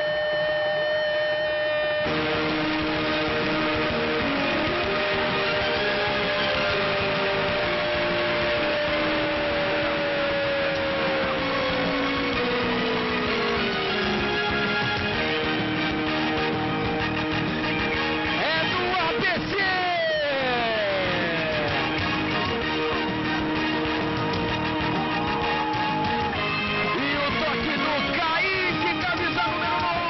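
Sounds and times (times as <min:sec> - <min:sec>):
held music notes: 0:00.0 - 0:30.0
commentator shouting goal: 0:18.4 - 0:22.0, 0:26.8 - 0:30.0.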